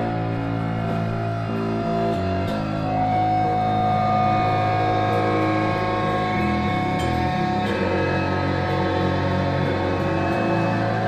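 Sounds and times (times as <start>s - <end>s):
distorted guitars sustained chord: 0.0s - 11.0s.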